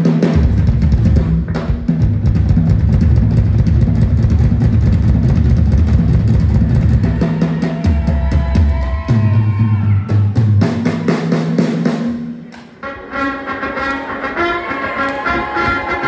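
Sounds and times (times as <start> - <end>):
drum kit solo: 0.0 - 12.5.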